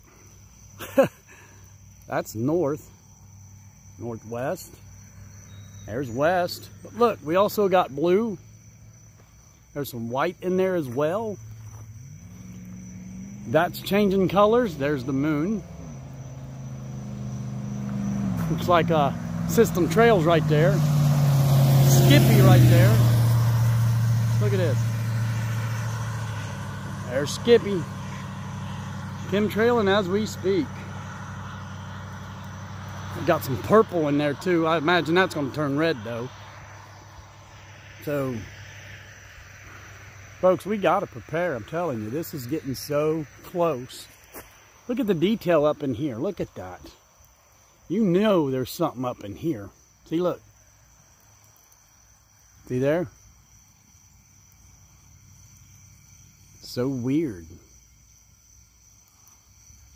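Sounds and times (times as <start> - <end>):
vehicle engine humming: 0.0 - 57.7
crickets trilling: 0.0 - 59.9.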